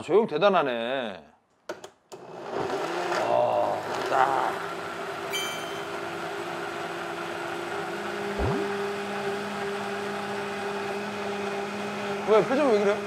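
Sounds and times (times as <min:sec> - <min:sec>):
blender running: 0:02.2 - 0:13.0
short rising tone: 0:08.4 - 0:08.9.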